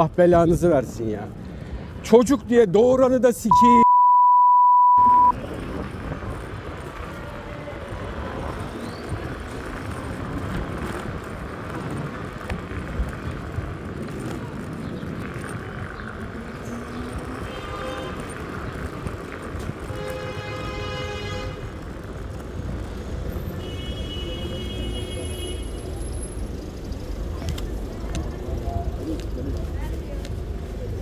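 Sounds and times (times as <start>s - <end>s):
scooter tyres rattling on paving: 5.4s - 31.0s.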